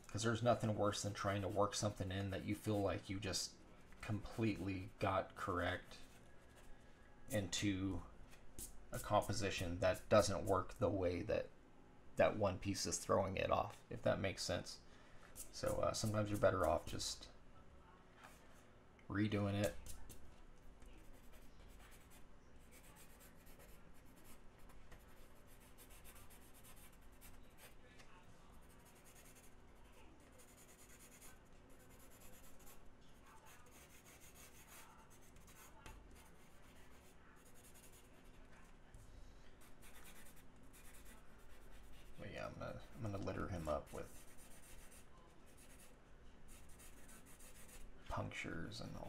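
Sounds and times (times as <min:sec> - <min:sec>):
pencil scratching on board: 0:20.9 - 0:27.8, 0:28.6 - 0:38.7, 0:39.6 - 0:42.2, 0:43.8 - 0:45.9, 0:46.5 - 0:47.9.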